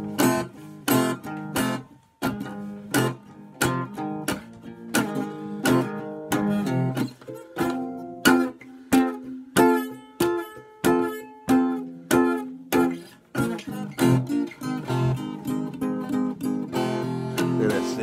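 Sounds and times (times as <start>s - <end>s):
acoustic guitar strummed: 0.0s - 18.0s.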